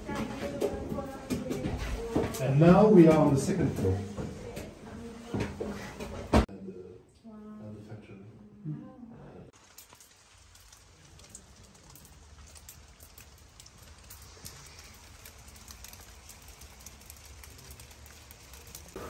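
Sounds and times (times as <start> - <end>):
raindrops ticking on hard surfaces: 0.0 - 4.7, 9.5 - 19.0
light rain falling: 9.5 - 19.0.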